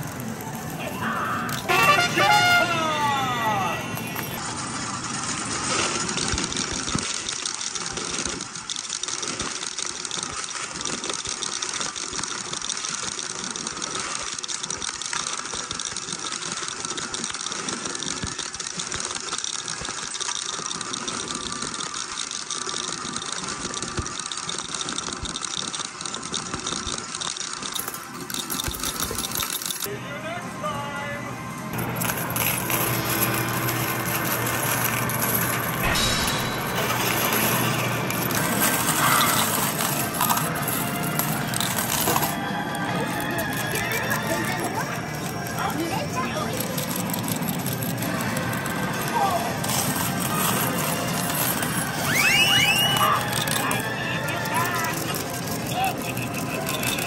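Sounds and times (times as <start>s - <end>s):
arcade machine music: 0.0s - 4.5s, 31.0s - 57.0s
metal medals clattering: 1.5s - 4.4s, 27.5s - 29.9s, 31.8s - 57.0s.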